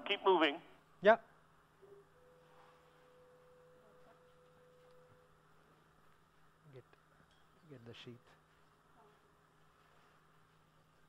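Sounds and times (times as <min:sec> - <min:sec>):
faint low hum: 0:00.0 - 0:11.0
faint pure tone: 0:01.8 - 0:05.7.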